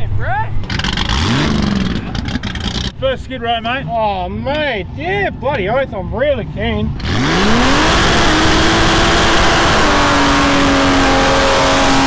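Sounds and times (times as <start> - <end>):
exhaust rushing: 0.0 - 4.1, 6.4 - 12.0
car engine revving: 0.6 - 3.1, 6.9 - 12.0.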